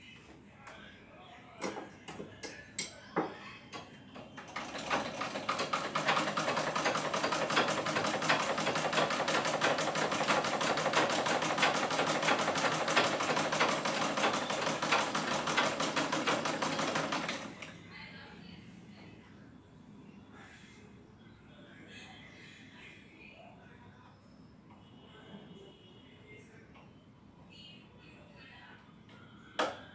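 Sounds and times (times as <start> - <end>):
handwheel turned by hand: 4.4 - 17.5
sewing machine stitching: 4.4 - 17.6.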